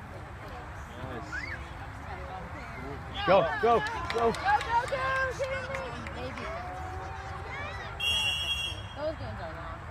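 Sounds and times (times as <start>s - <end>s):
referee's whistle blast: 8.0s - 9.0s.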